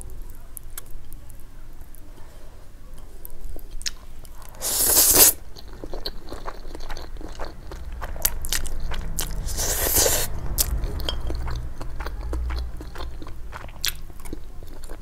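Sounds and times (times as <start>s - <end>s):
wet chewing: 3.6s - 15.0s
slurping noodles: 4.5s - 5.4s, 9.3s - 10.3s.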